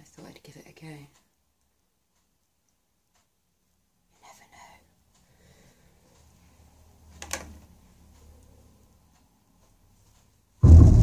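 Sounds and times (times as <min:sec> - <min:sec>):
woman whispering: 0:00.0 - 0:01.2, 0:04.1 - 0:04.9.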